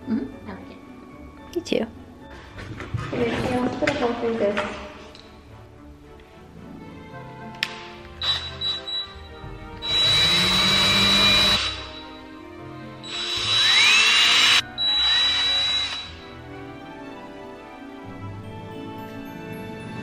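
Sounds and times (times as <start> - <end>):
cordless drill whining: 8.2 - 9.2, 9.8 - 12.2, 13.0 - 16.3.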